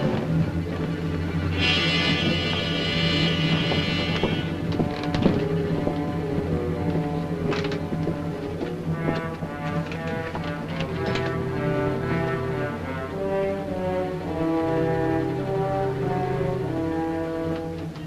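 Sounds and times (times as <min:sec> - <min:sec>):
orchestral music with held chords: 0:00.0 - 0:18.0.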